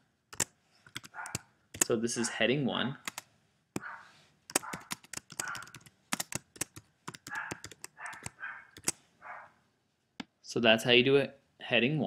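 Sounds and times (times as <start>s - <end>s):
computer keyboard typing: 0.3s - 1.9s, 3.0s - 3.2s, 4.5s - 9.0s.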